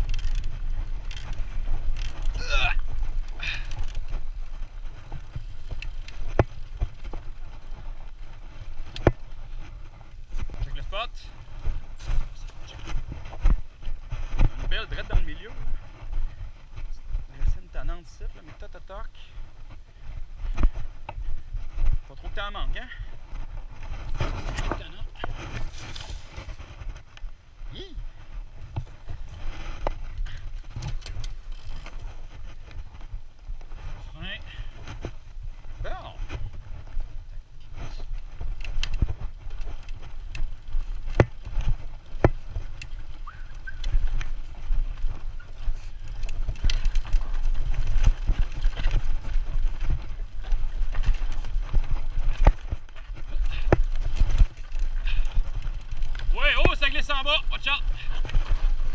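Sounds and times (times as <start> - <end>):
bike clacking and rattling on rocks: 0.0 - 16.4, 20.4 - 27.3, 28.6 - 33.6, 37.9 - 58.9
bike tyres rumbling over dirt: 0.0 - 58.9
wind: 0.0 - 58.9.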